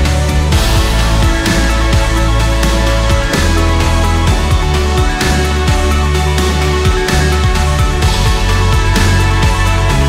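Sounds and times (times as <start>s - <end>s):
music with steady beat: 0.0s - 10.0s
sliding deep bass notes: 0.0s - 10.0s.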